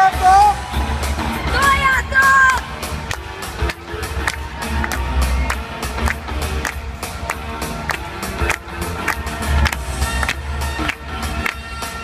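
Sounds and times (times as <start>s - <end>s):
up-tempo dance music: 0.0s - 12.0s.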